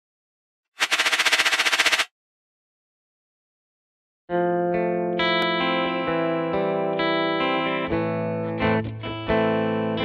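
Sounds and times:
rapid rattling burst: 0:00.8 - 0:02.1.

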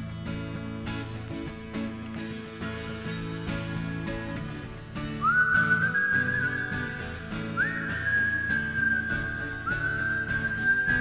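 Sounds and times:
strummed acoustic guitar: 0:00.0 - 0:11.0
high whistled melody: 0:03.5 - 0:11.0.

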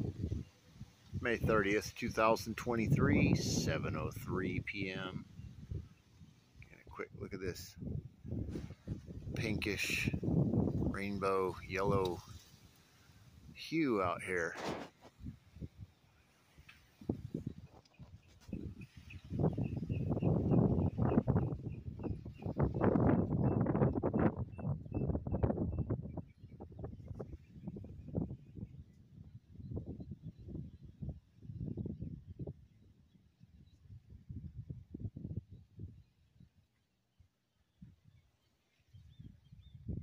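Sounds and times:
wind buffeting microphone: 0:00.0 - 0:16.0, 0:16.6 - 0:36.8, 0:38.9 - 0:40.0.

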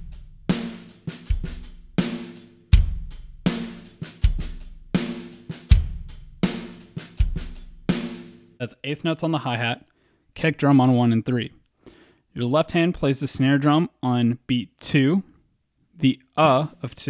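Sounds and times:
drum kit playing steady beat: 0:00.0 - 0:08.6, 0:16.4 - 0:16.8.

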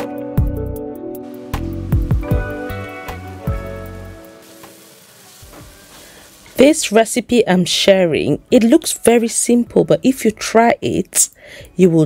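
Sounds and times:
background music: 0:00.0 - 0:12.0
vegetables sizzling in oil: 0:01.3 - 0:07.8.

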